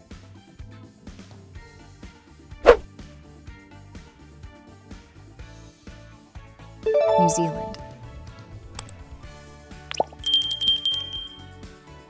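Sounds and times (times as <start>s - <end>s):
background music: 6.8s - 11.4s
notification bell chime: 6.9s - 8.2s, 9.9s - 11.4s
click and rising plop: 9.9s - 10.3s.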